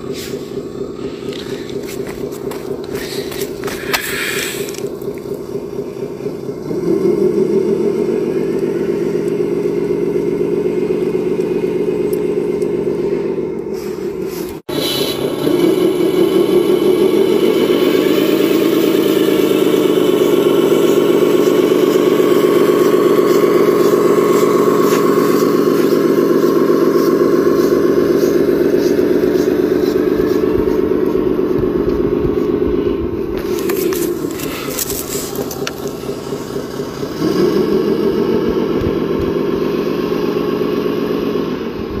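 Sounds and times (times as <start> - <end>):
simulated diesel engine through speaker: 0.0 - 42.0.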